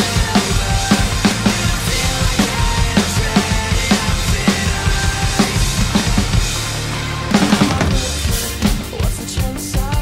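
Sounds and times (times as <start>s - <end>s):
backing track of guitars and synths: 0.0s - 10.0s
drum kit rock beat: 0.0s - 10.0s.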